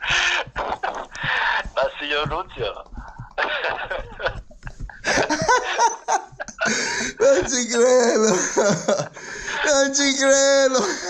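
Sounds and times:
man laughing helplessly: 3.4s - 10.0s, 10.7s - 11.0s.

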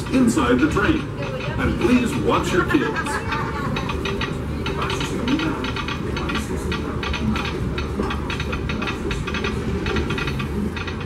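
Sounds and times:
train rumbling on track: 0.0s - 11.0s
train wheels clicking and clacking: 0.0s - 11.0s.

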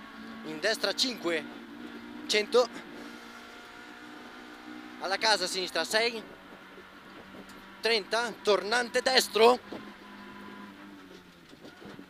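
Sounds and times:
faint car engine from inside cabin: 0.0s - 12.0s.

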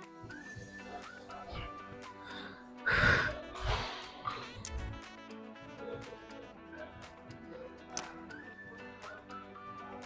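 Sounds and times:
background music: 0.0s - 10.0s
effort exhalations: 1.5s - 4.7s
woman breathing forcefully: 1.6s - 4.4s.

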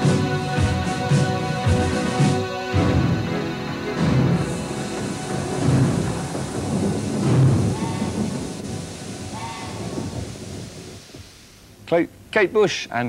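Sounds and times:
thunder rumbling: 0.0s - 12.3s
faint music: 0.0s - 13.0s
steady rain: 0.0s - 13.0s.

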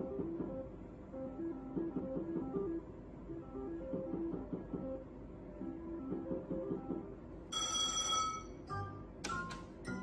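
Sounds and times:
slot machine win chime: 7.5s - 9.0s.

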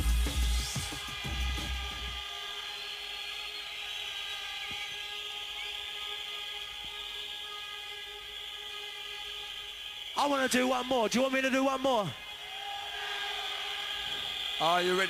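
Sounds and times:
drum and bass beats: 0.0s - 2.8s.

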